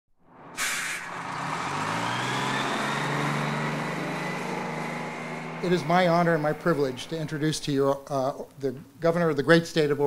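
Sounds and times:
vehicle motor humming: 0.4s - 7.9s
air brakes hissing: 0.6s - 1.2s.

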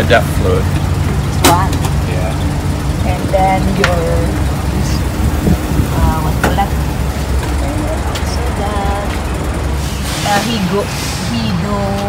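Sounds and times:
truck engine low rumble: 0.0s - 12.0s.

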